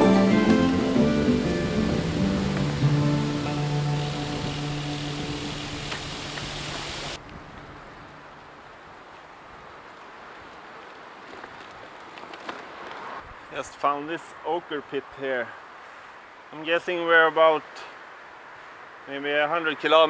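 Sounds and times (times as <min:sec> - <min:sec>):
background music with sustained notes: 0:00.0 - 0:07.0
faint outdoor hiss: 0:00.0 - 0:20.0.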